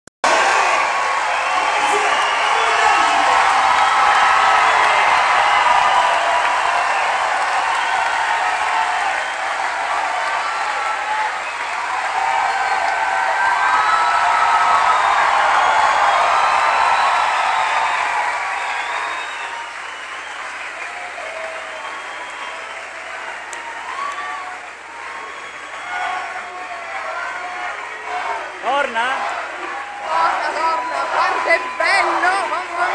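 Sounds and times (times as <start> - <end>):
crowd applauding and cheering: 0.2 - 32.9.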